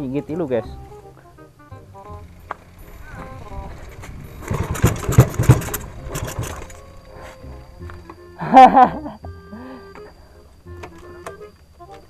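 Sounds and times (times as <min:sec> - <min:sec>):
background music: 0:00.0 - 0:12.0
motorcycle engine revving loudly: 0:02.8 - 0:06.7.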